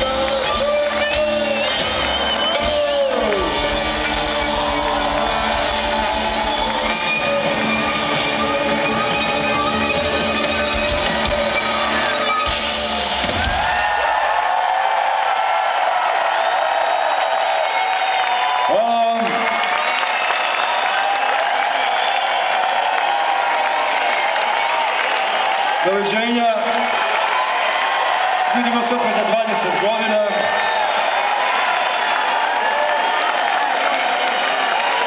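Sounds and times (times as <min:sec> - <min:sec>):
live rock band playing: 0:00.0 - 0:14.0
crowd cheering: 0:00.0 - 0:35.0.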